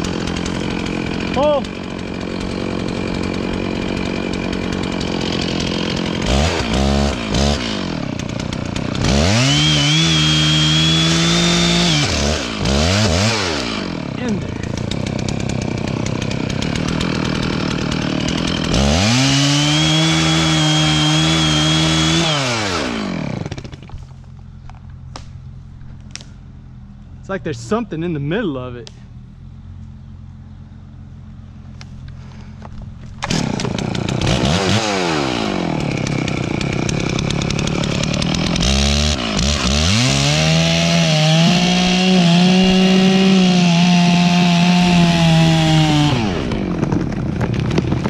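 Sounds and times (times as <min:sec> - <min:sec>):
chainsaw revving and idling: 0:00.0 - 0:26.3, 0:27.1 - 0:48.0.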